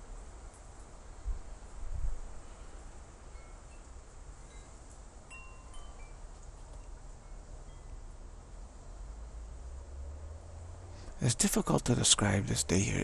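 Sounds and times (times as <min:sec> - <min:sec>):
wind rumble on microphone: 0:01.2 - 0:02.4
faint chiming tones: 0:03.3 - 0:08.2.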